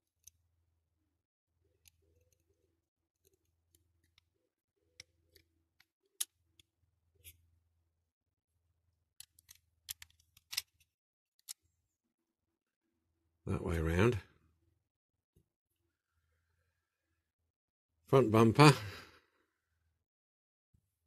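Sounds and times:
model car parts clicking: 0.0 - 0.4, 1.7 - 7.4, 9.1 - 11.7.

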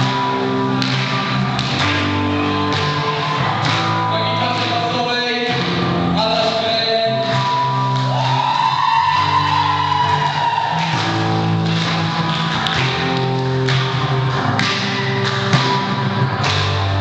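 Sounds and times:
bass guitar: 0.0 - 17.0.

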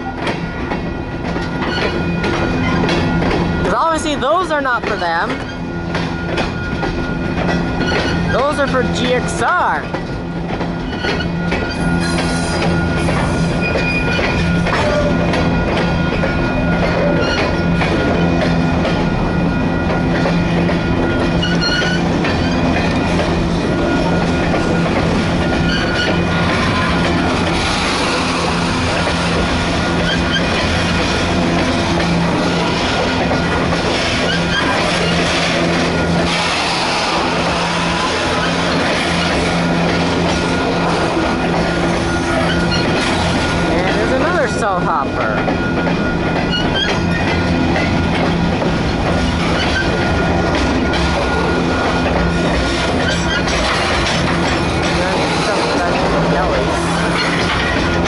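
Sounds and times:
train wheels rolling on rails: 0.0 - 58.0.

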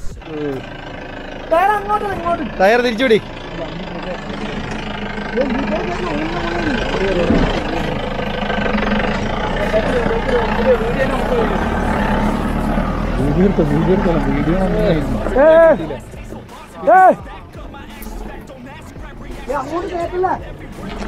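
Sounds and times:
diesel engine under load: 0.0 - 21.0
voices calling out: 0.0 - 21.0.

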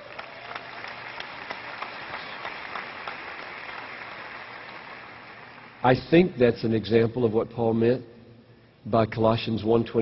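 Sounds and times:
crowd clapping: 0.0 - 6.0.

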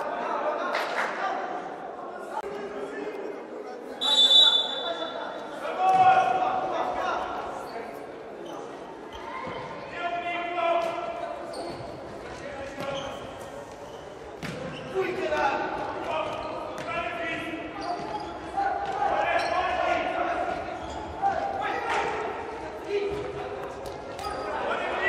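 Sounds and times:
players shouting in echoing hall: 3.9 - 25.0.

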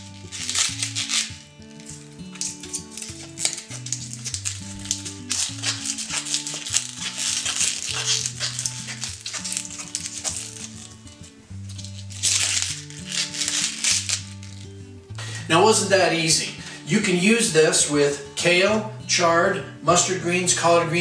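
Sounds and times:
kale leaves tearing: 0.0 - 15.0
background music: 0.0 - 21.0.

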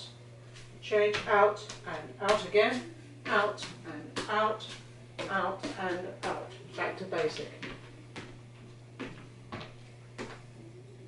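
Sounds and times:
steady low hum: 0.0 - 11.0
footsteps on wooden floorboards: 7.2 - 10.5.

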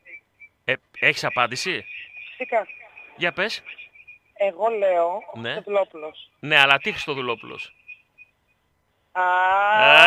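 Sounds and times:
person's long drawn-out aaah: 9.2 - 10.0.

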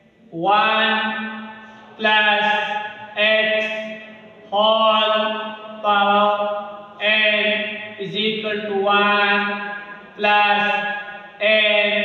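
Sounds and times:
man chanting in monotone: 0.0 - 12.0.

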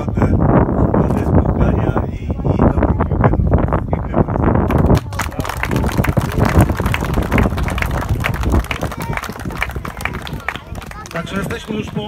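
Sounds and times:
small crowd applauding: 4.7 - 12.0.

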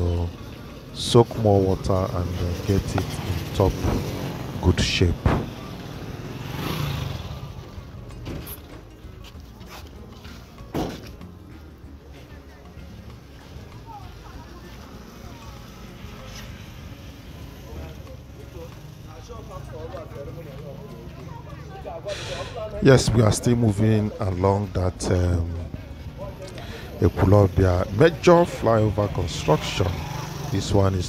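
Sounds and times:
faint distant voices: 0.0 - 31.0
low steady street rumble: 0.0 - 31.0
sharp knock: 5.2 - 5.6.

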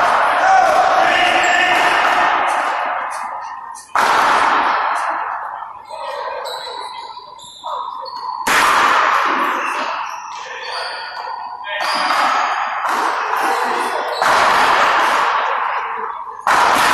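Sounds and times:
paddleball hits echoing: 0.0 - 5.6, 8.4 - 10.0, 11.8 - 15.8, 16.4 - 16.9.

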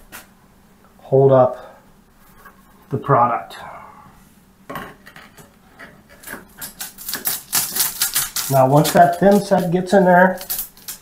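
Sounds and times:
tile rubbing and scraping: 5.0 - 11.0.

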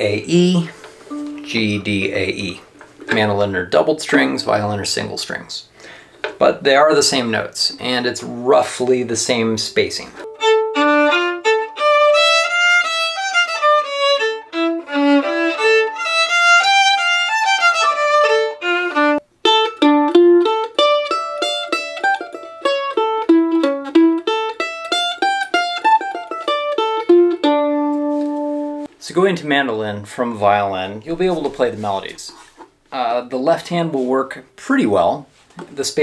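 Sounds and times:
mandolin melody: 0.4 - 3.5, 10.2 - 28.9
violin melody: 0.5 - 2.9, 10.2 - 28.9.

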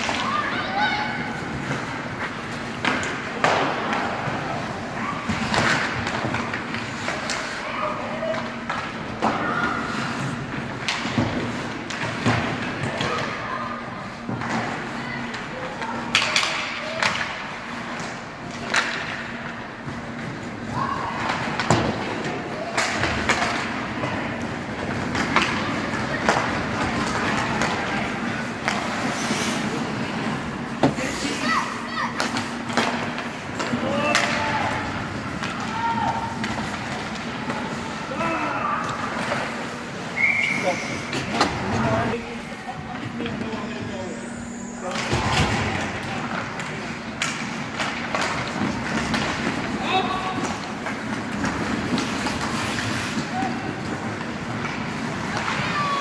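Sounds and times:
hockey sticks and puck knocking: 1.5 - 4.7, 8.3 - 13.3, 14.2 - 20.5, 21.2 - 31.4, 32.1 - 38.0, 44.9 - 56.0.

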